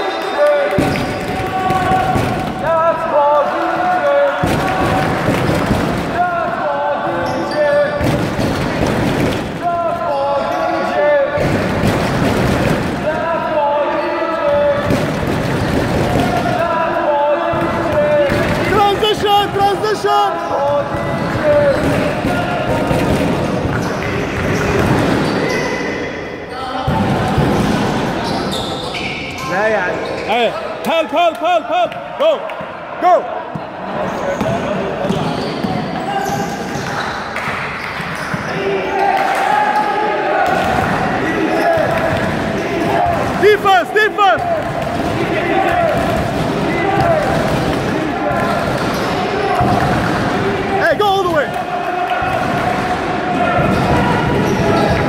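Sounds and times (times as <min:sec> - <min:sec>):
voices: 0:00.0 - 0:08.8, 0:09.5 - 0:11.9, 0:12.7 - 0:55.0
basketball bouncing on gym court: 0:20.7 - 0:25.4, 0:44.4 - 0:50.5.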